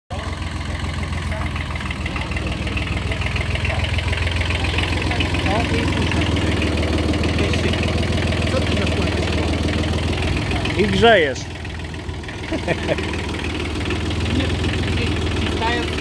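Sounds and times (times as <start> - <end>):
small diesel tractor engine idling: 0.1 - 16.0.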